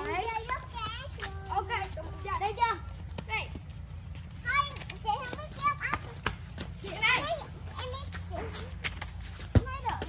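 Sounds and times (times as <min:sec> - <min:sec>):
young children's voices: 0:00.0 - 0:03.1, 0:04.3 - 0:10.0.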